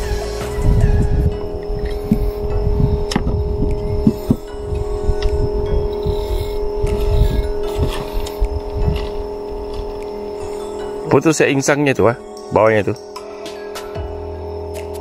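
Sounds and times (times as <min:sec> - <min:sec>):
low rumbles: 0:00.0 - 0:12.3
steady tonal hum: 0:00.0 - 0:15.0.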